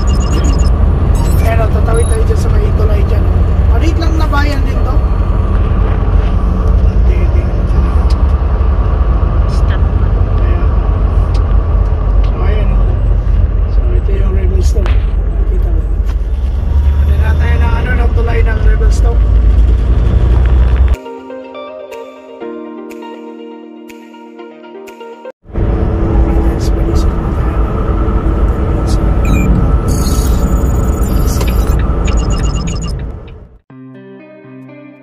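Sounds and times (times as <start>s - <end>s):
truck engine and road rumble: 0.0s - 21.0s, 25.4s - 33.6s.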